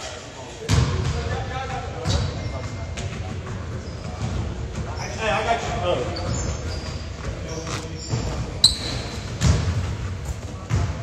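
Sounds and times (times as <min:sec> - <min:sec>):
basketball bouncing on hardwood floor: 0:08.6 - 0:10.0.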